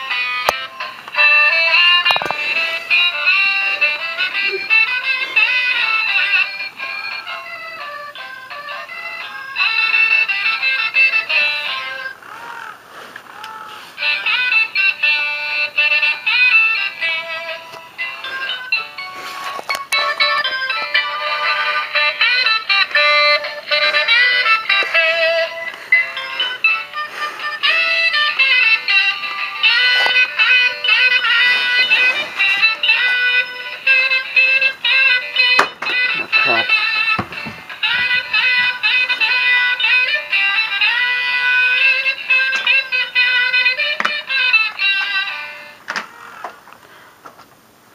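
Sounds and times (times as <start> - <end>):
saxophone tune from toy speaker: 0.0 - 12.2, 13.5 - 45.8.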